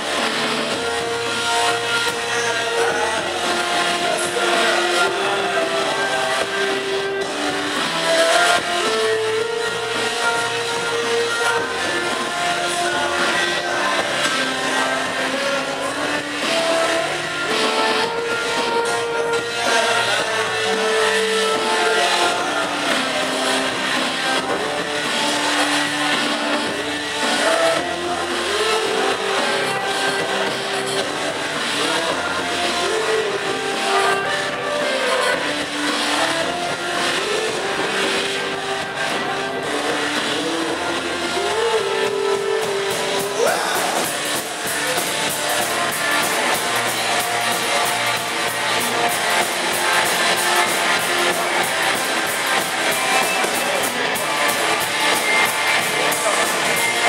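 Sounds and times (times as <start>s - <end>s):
rock band playing: 0.0s - 57.0s.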